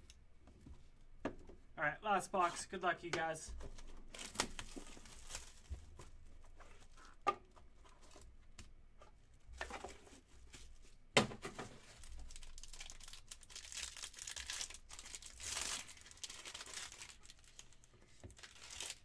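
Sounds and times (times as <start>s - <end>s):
foil pack crinkling and tearing: 4.1s - 5.8s, 11.7s - 19.0s.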